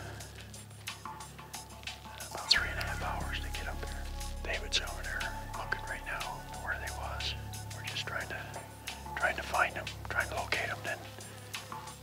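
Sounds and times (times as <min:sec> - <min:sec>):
soft background music: 0:00.0 - 0:12.0
man whispering: 0:02.2 - 0:11.2.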